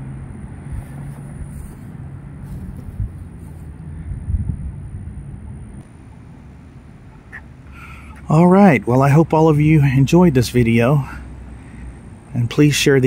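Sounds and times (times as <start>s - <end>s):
low hum: 0.0s - 12.5s
low outdoor rumble: 0.0s - 13.0s.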